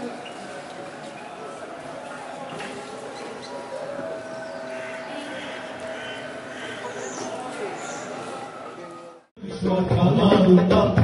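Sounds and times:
murmur of distant voices: 0:00.0 - 0:09.3.

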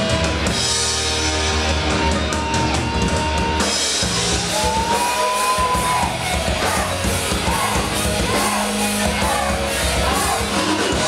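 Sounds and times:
distorted electric guitars: 0:00.0 - 0:11.0
drum kit: 0:00.0 - 0:11.0.

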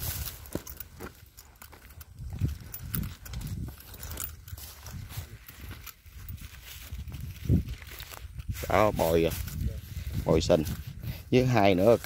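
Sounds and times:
footsteps on dry grass: 0:00.0 - 0:12.0.

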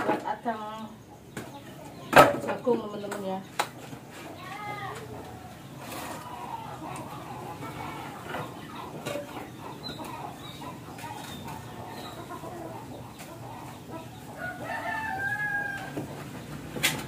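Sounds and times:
chickens clucking: 0:00.0 - 0:17.0
rooster crowing: 0:14.3 - 0:16.2.

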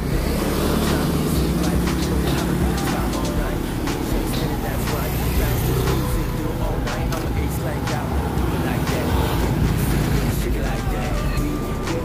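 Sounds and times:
people's voices: 0:00.0 - 0:12.0
scooter and car traffic: 0:00.0 - 0:12.0.

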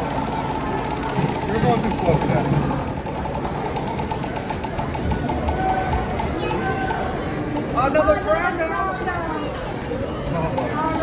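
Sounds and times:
crowd chatter: 0:00.0 - 0:11.0
faint music: 0:00.0 - 0:11.0.

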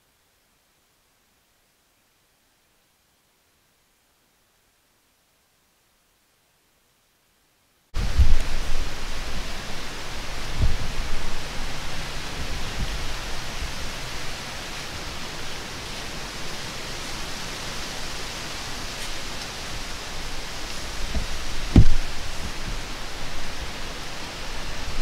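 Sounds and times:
gusts thumping microphone: 0:08.0 - 0:13.9, 0:20.8 - 0:23.8
wind rushing hiss: 0:08.0 - 0:25.0.

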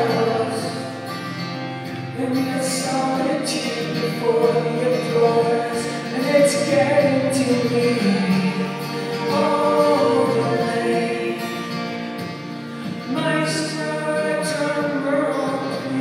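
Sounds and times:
man and woman singing: 0:00.0 - 0:01.4, 0:02.1 - 0:11.9, 0:13.0 - 0:16.0
strummed acoustic guitar: 0:00.0 - 0:16.0.

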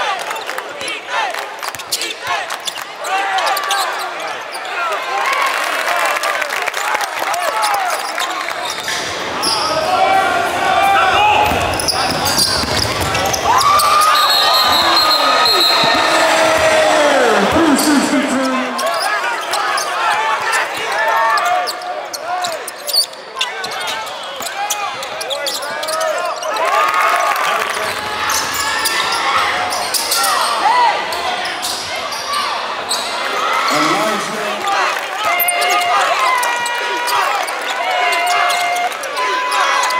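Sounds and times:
players and crowd shouting: 0:00.0 - 0:08.2, 0:09.3 - 0:39.9
sneakers squeaking on hardwood: 0:11.5 - 0:16.1.

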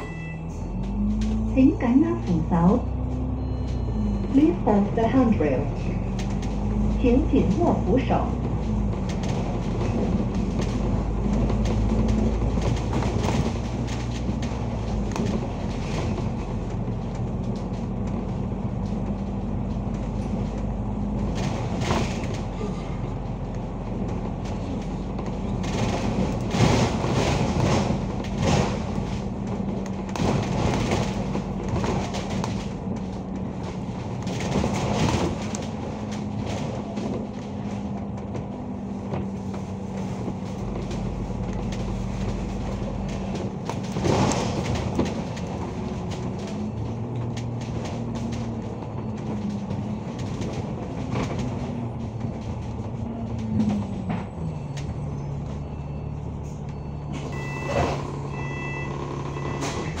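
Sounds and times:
short high beeps: 0:00.0 - 0:01.0, 0:57.3 - 1:00.0
bus engine drone with whine: 0:00.0 - 1:00.0
body knocks and rattles: 0:08.4 - 0:55.7.

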